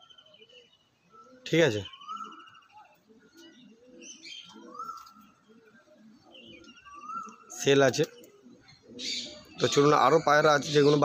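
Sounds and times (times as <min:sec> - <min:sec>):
pigeons cooing: 0:00.0 - 0:11.0
small birds chirping and trilling: 0:00.0 - 0:11.0.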